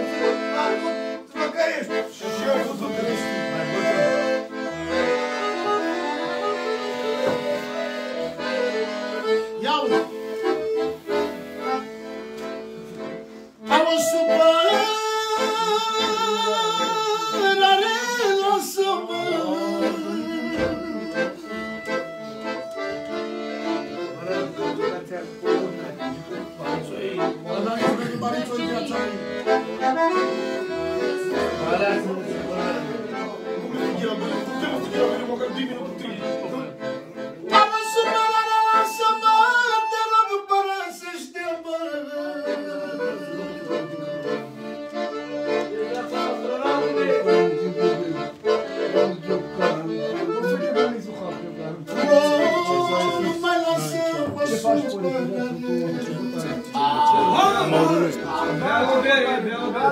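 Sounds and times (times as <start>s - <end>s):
piano accordion playing a tune: 0.0s - 59.9s
man singing long held notes: 13.6s - 21.6s.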